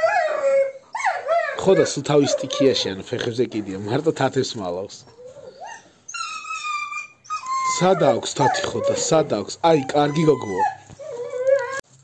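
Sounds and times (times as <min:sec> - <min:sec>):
dog whining: 0:00.0 - 0:03.0, 0:05.0 - 0:11.8.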